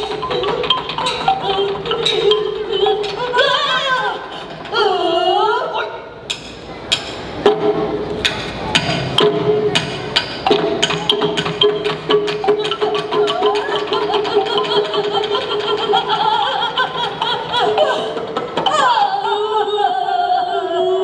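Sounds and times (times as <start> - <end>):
percussion strikes: 0.0 - 4.8, 6.2 - 18.9.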